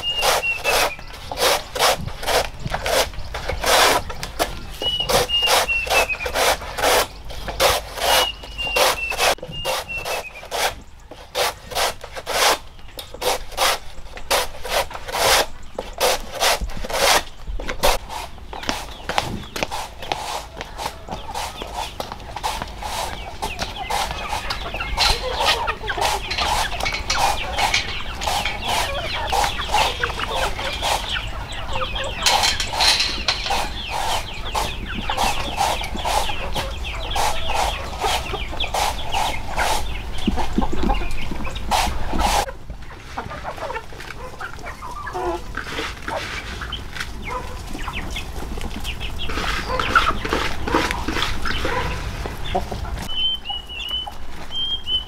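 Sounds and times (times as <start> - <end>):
chickens clucking: 0.0 - 55.0.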